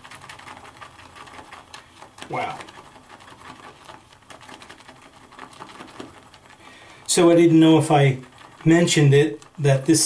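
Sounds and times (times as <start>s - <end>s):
shaving brush whipping lather: 0.0s - 10.0s.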